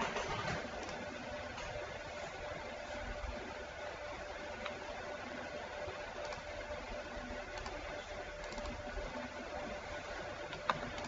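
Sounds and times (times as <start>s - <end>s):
faint steady hum: 0.0s - 11.0s
computer mouse clicks: 0.1s - 1.8s, 6.2s - 6.6s, 7.5s - 7.8s, 8.4s - 8.9s, 10.5s - 11.0s.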